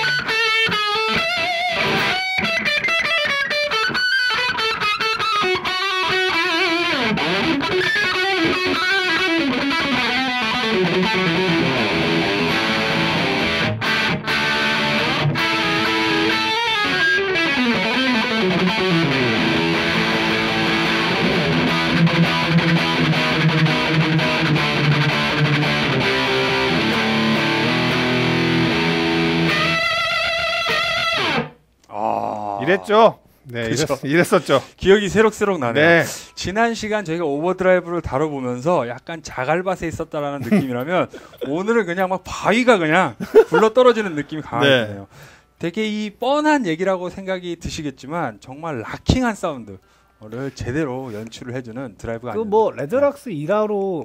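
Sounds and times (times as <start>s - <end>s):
distorted electric guitar: 0.0s - 31.6s.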